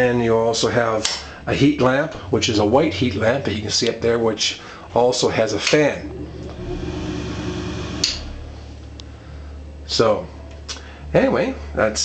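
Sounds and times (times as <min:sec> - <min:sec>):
exhaust fan humming: 0:04.5 - 0:09.7.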